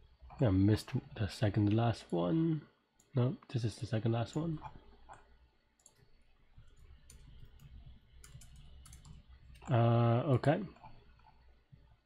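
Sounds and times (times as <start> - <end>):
keyboard and mouse clicks: 4.6 - 9.7.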